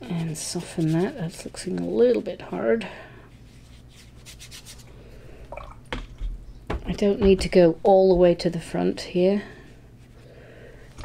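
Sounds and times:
brush scrubbing on wet paper: 0:00.0 - 0:01.8, 0:03.3 - 0:04.9.

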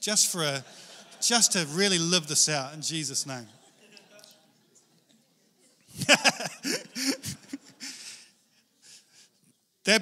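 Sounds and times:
man laughing: 0:05.9 - 0:08.2.

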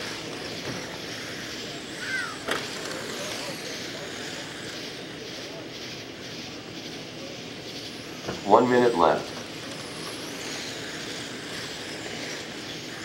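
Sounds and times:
rc car motor and tyre noise: 0:00.0 - 0:13.0
falling chirp: 0:00.4 - 0:05.4.

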